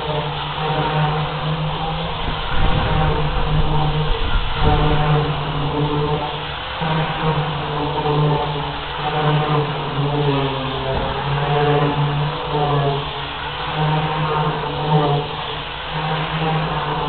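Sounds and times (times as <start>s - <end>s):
voices chanting low drone: 0.0s - 17.0s.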